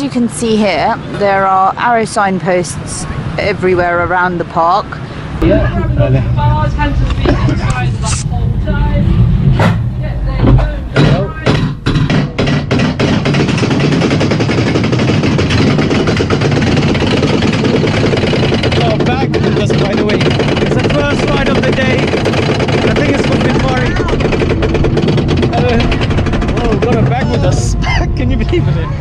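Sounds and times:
roller coaster train rolling: 0.2s - 29.0s
wind rumble on microphone: 5.2s - 12.1s
rapid mechanical lift clatter: 9.4s - 28.5s.

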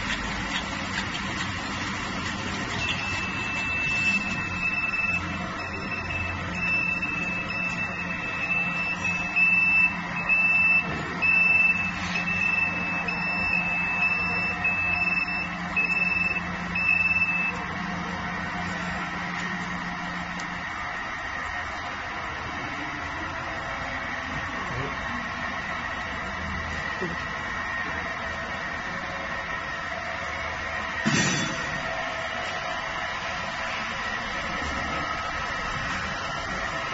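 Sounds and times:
industrial machine hum: 0.0s - 36.9s.

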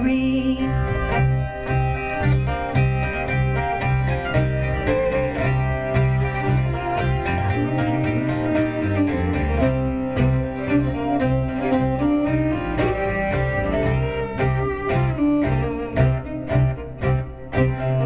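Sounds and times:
acoustic folk band playing: 0.0s - 18.0s
bass notes: 0.0s - 18.0s
held melody line: 0.0s - 18.0s
plucked strings: 0.0s - 18.0s.

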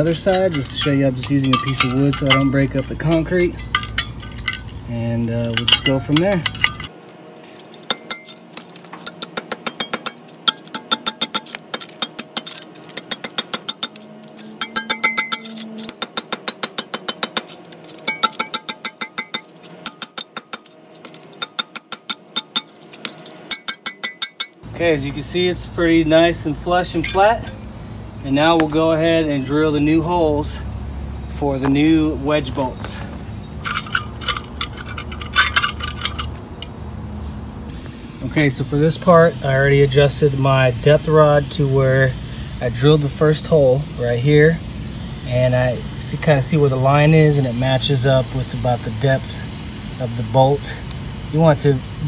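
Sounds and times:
metallic clink: 0.0s - 6.9s, 7.6s - 24.6s, 33.6s - 36.3s
low steady hum: 0.0s - 52.0s.

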